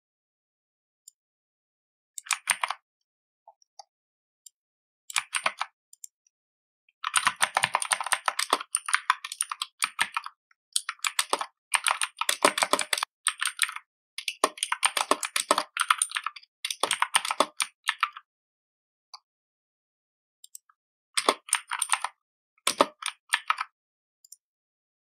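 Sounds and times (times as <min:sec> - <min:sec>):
fast typing on computer keyboard: 0:02.3 - 0:02.8, 0:05.2 - 0:05.7, 0:07.0 - 0:18.2, 0:21.2 - 0:23.7.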